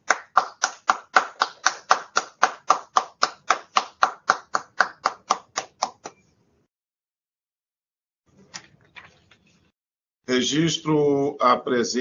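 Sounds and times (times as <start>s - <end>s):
hand clapping: 0.0s - 6.2s.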